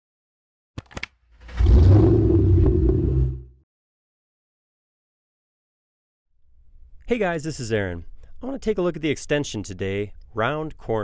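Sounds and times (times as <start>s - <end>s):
low rumbling whoosh: 1.4s - 3.6s.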